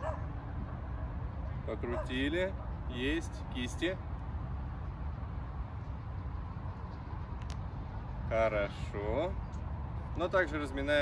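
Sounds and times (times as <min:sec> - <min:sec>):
distant city traffic rumble: 0:00.0 - 0:11.0.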